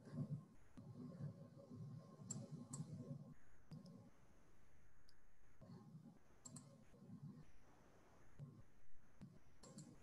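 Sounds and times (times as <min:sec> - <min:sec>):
soft clicks: 0:06.4 - 0:06.7, 0:09.2 - 0:10.0.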